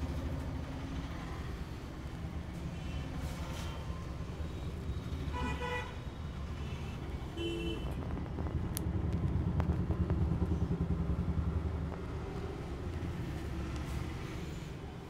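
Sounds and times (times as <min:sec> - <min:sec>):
road traffic rumble: 0:00.0 - 0:15.0.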